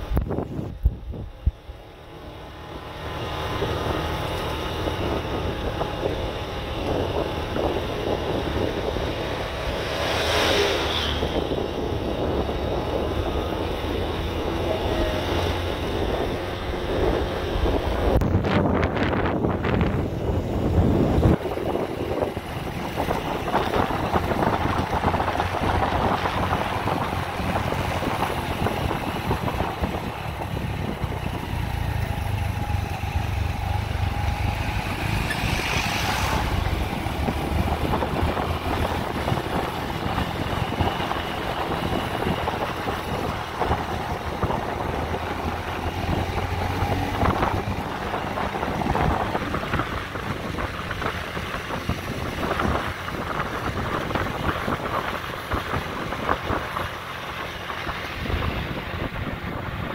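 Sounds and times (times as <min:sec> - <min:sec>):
motorbike engine drone: 0:00.0 - 0:59.9
wind buffeting microphone: 0:00.0 - 0:59.9.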